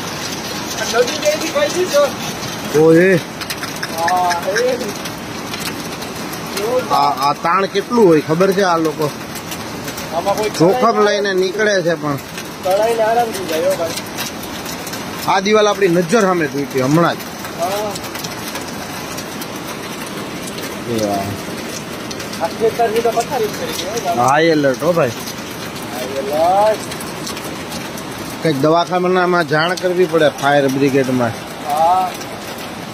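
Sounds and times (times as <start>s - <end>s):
floodwater rushing: 0.0s - 32.9s
heavy rain falling: 0.0s - 32.9s.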